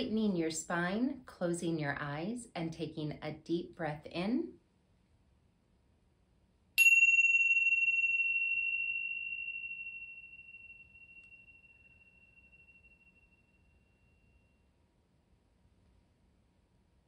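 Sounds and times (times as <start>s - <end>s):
cymbals ringing: 6.8s - 14.3s.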